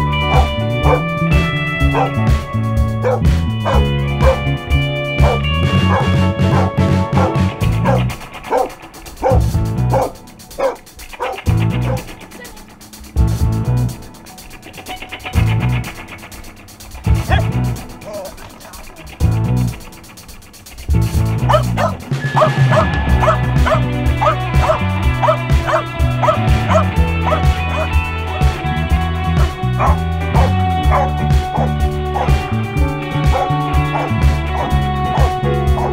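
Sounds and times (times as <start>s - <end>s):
background music with bass line: 0.0s - 35.9s
dog barking: 0.3s - 1.0s, 1.9s - 2.2s, 3.0s - 4.4s, 5.2s - 12.1s, 17.3s - 18.3s, 21.5s - 27.9s, 29.4s - 32.4s, 33.3s - 35.9s.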